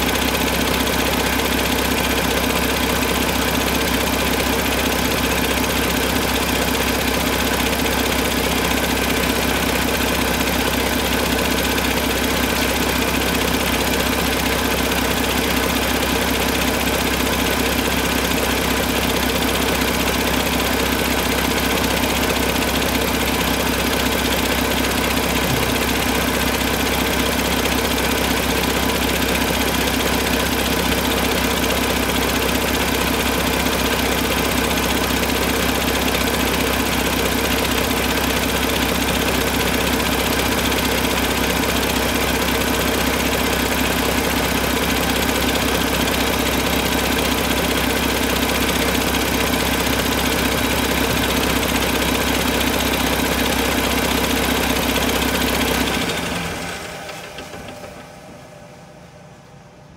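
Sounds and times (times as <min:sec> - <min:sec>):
diesel engine idling: 0:00.0 - 0:59.9.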